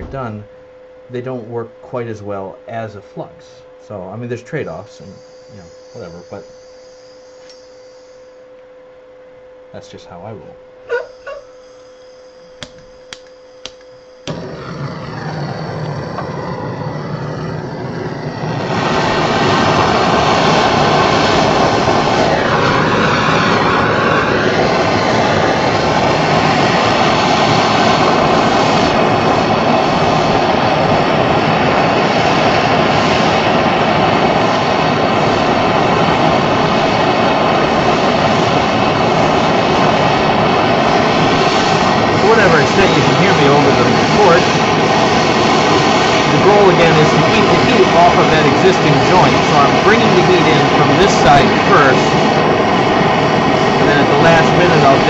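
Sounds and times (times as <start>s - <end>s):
torch flame hissing: 4.7s - 8.3s, 13.6s - 55.0s.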